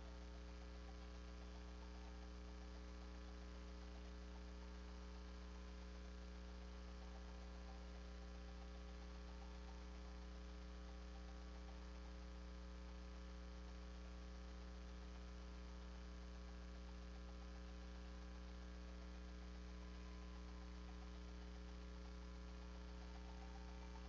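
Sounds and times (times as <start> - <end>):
faint electrical mains hum: 0.0 - 24.0.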